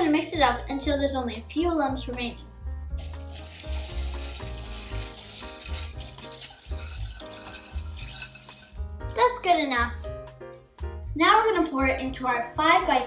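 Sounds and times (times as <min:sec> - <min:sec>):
background music with bass line: 0:00.0 - 0:13.0
plastic bricks clattering in glass bowl: 0:03.0 - 0:08.8.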